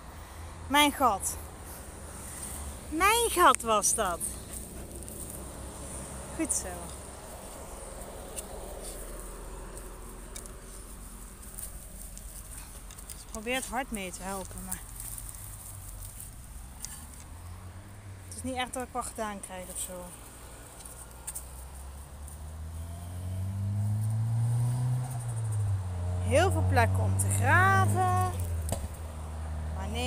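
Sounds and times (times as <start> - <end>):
person speaking: 0.7 - 1.6, 2.8 - 4.5, 6.3 - 7.0, 12.4 - 15.0, 18.3 - 20.2, 26.3 - 28.5
dog paws scratching dirt: 1.6 - 17.6, 18.3 - 22.7.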